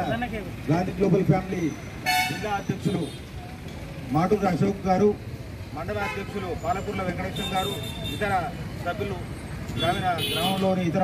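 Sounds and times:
street traffic noise: 0:00.0 - 0:11.0
man speaking into a microphone: 0:04.1 - 0:11.0.

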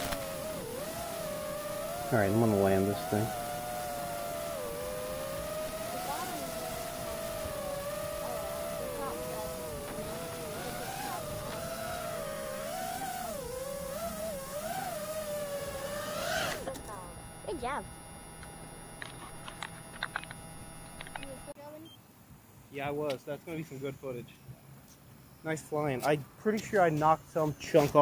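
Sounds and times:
quadcopter motors whining: 0:00.0 - 0:22.0.

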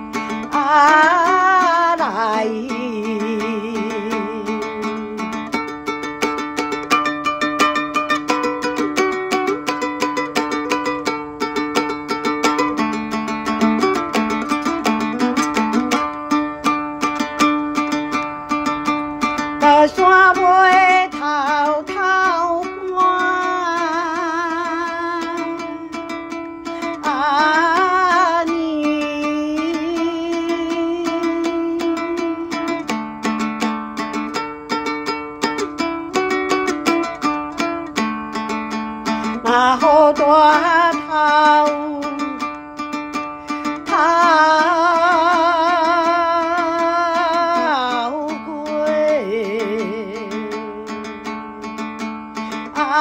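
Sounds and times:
woman singing with vibrato: 0:00.0 - 0:05.6, 0:19.4 - 0:32.9, 0:39.0 - 0:51.4, 0:52.4 - 0:53.0
plucked lute notes: 0:00.0 - 0:53.0.

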